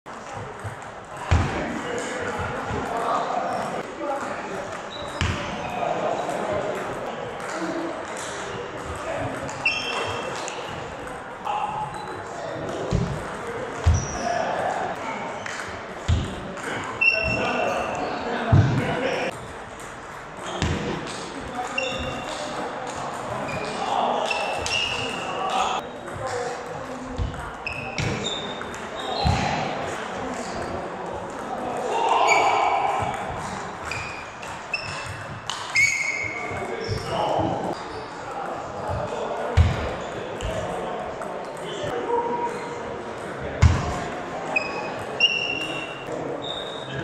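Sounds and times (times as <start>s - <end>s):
indistinct chatter: 0.1s - 47.0s
shoe squeaks on wooden floor: 4.9s - 5.8s, 9.6s - 10.9s, 13.9s - 14.3s, 17.0s - 18.0s, 21.7s - 22.5s, 23.5s - 25.4s, 27.6s - 29.6s, 33.8s - 38.2s, 44.6s - 47.0s.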